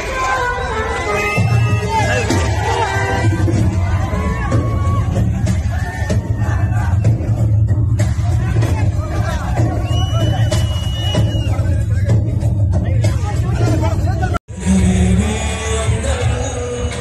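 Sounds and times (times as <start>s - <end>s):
large crowd voices: 0.0s - 17.0s
loud music with heavy bass: 0.0s - 17.0s.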